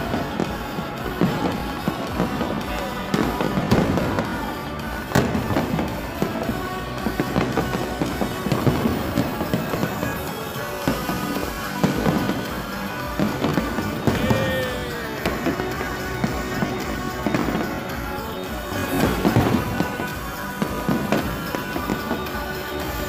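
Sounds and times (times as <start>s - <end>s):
fireworks bursting and crackling: 0.0s - 23.0s
music playing: 0.0s - 23.0s.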